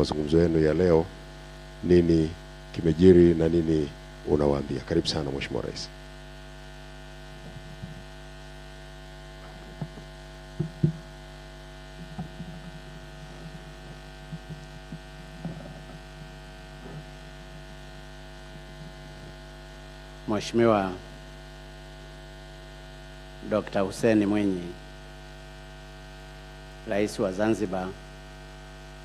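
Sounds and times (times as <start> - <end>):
electrical mains hum: 0.0 - 29.0
microphone being handled: 7.2 - 19.6.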